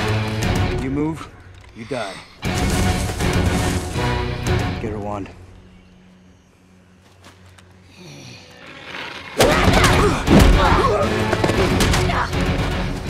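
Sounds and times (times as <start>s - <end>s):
action music with heavy impacts: 0.0s - 1.0s, 2.4s - 5.0s, 9.5s - 13.0s.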